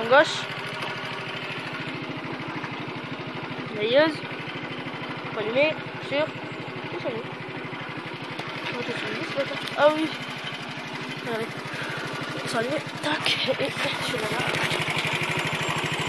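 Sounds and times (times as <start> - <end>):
scooter engine idling: 0.0 - 16.0.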